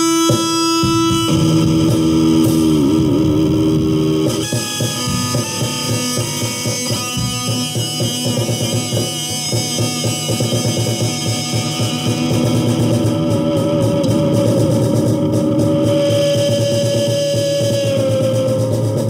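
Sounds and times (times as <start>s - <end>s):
drums steady beat: 0.0s - 19.0s
rock guitar: 0.0s - 19.0s.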